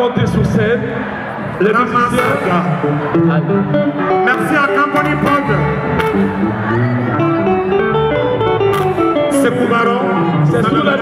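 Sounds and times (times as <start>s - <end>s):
live band playing: 0.0s - 11.0s
electric guitar lines: 1.8s - 11.0s.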